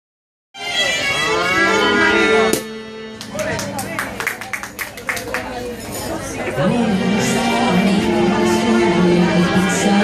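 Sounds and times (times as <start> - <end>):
steady instrument notes: 0.6 - 4.5
woman singing into a microphone: 6.1 - 10.0.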